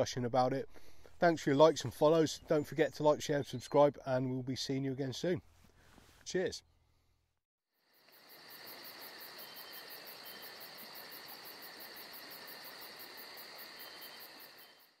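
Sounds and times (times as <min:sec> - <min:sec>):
insects chirring: 0:07.8 - 0:15.0.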